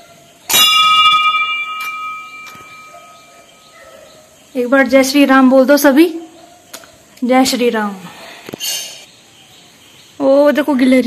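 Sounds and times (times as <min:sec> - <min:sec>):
temple bell ringing: 0:00.5 - 0:03.8.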